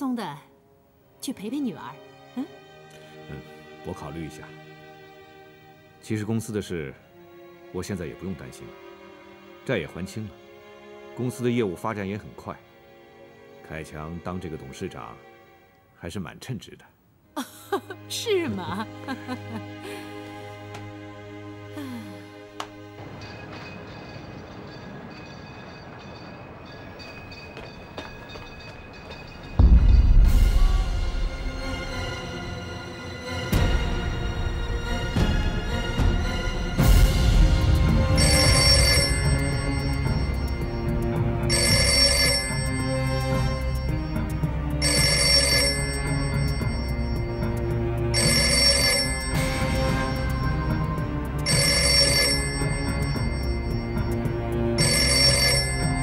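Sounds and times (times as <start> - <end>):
background music: 0.0 - 56.0
even rumbling street noise: 22.7 - 32.7
telephone bell ringing: 38.2 - 56.0.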